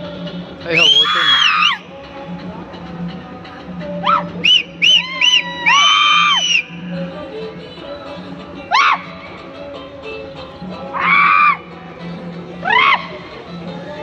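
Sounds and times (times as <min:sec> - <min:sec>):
background music: 0:00.0 - 0:14.0
high-pitched shouts and whoops: 0:00.8 - 0:01.8, 0:04.0 - 0:06.7, 0:08.7 - 0:09.1, 0:10.9 - 0:11.6, 0:12.6 - 0:13.2.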